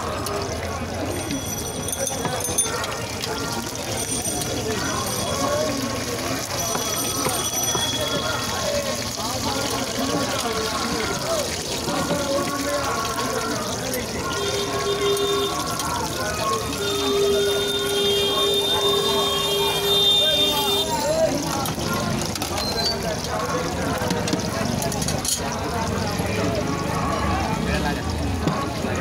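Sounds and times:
voices talking: 0:00.0 - 0:29.0.

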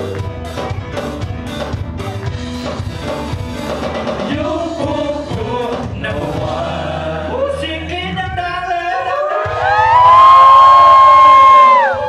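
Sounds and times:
backing music: 0:00.0 - 0:12.0
male singers performing: 0:04.2 - 0:10.1.

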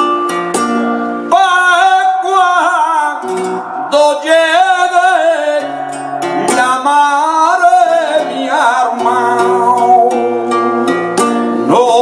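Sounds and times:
flamenco guitar: 0:00.0 - 0:12.0
man singing flamenco: 0:01.2 - 0:12.0.

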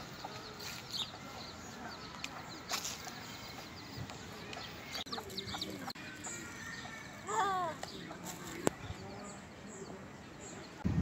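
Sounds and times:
hen clucking: 0:04.6 - 0:07.0.

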